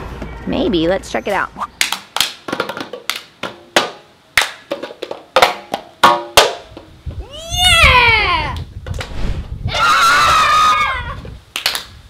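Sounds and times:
hand claps: 1.8 - 3.3, 4.4 - 4.7, 11.5 - 12.0.

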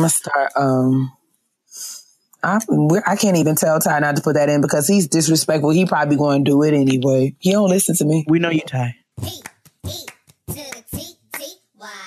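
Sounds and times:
hand claps: 9.2 - 11.5.

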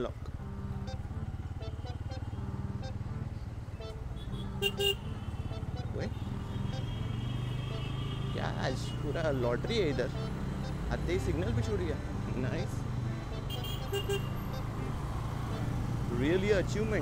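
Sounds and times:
motorcycle engine running: 0.0 - 17.0
vehicle horn toots: 3.8 - 9.0, 13.1 - 14.6.

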